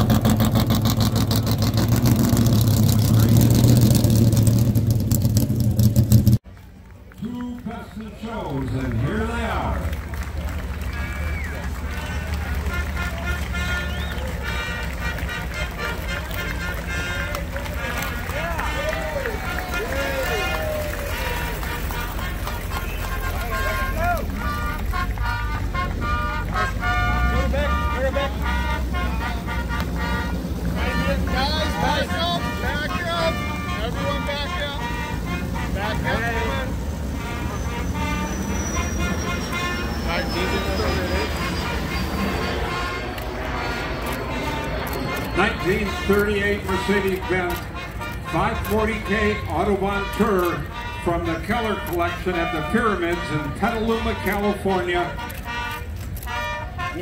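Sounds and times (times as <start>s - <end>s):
car engines rumbling: 0.0s - 57.0s
crowd chatter: 5.8s - 57.0s
voices over a loudspeaker: 7.2s - 10.0s, 45.3s - 55.3s.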